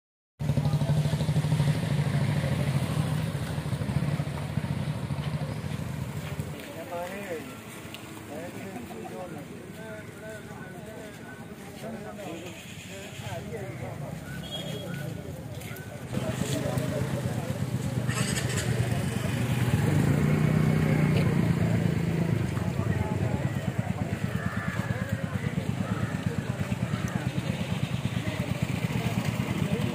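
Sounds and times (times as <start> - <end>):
motorcycle engine running: 0.4 - 6.7, 13.9 - 29.9
chatter of onlookers: 0.4 - 29.9.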